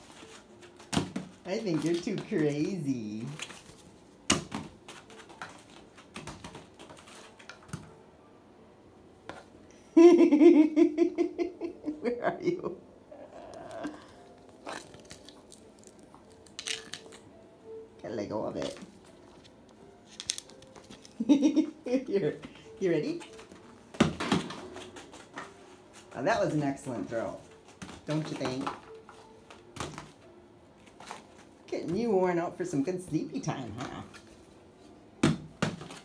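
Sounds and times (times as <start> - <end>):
parrot crunching on wood: 13.4 - 17.2
sharp wood cracks: 14.7 - 17.2.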